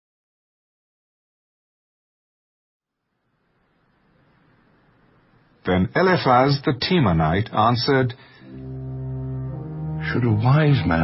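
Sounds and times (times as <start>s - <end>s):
low held brass chord: 8.2s - 11.0s.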